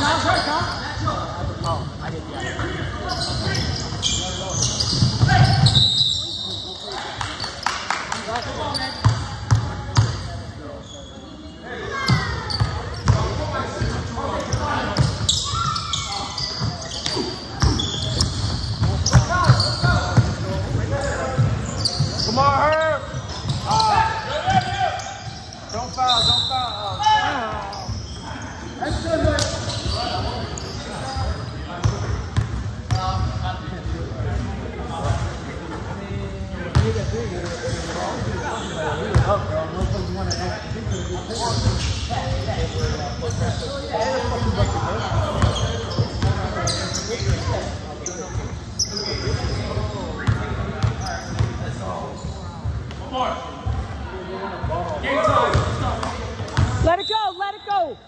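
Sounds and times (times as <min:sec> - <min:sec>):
shoe squeaks: 0:00.0 - 0:07.6, 0:08.4 - 0:31.7, 0:37.7 - 0:52.8.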